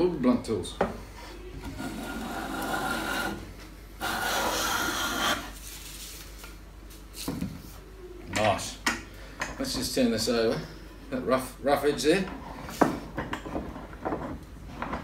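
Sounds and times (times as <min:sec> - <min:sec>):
hand plane shaving wood: 0:01.6 - 0:03.4
knocks and clatter of tools: 0:12.2 - 0:15.0.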